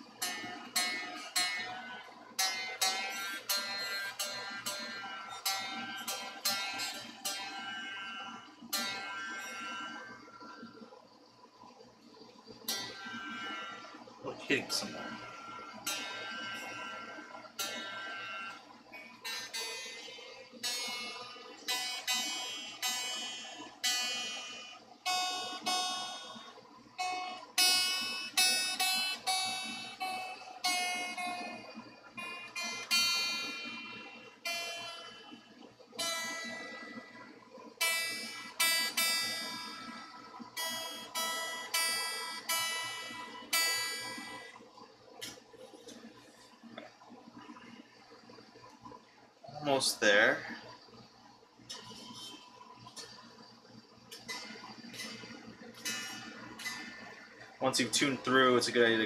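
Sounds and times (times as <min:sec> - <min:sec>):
electric guitar strings plucked: 0:00.0 - 0:10.2, 0:12.7 - 0:35.2.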